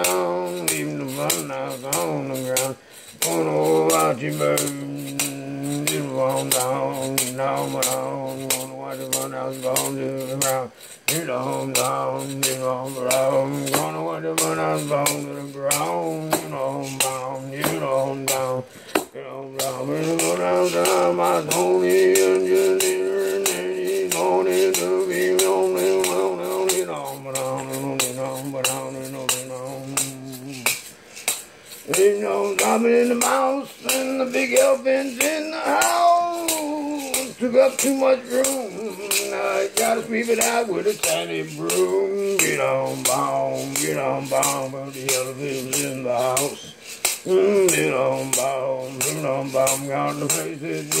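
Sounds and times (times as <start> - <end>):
regular clicking beat: 0.0 - 51.0.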